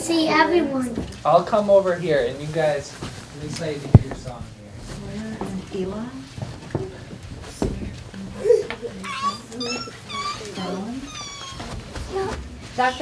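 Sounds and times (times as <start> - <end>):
children chattering: 8.3 - 13.0
high-pitched squeaky vocal calls: 9.1 - 11.7.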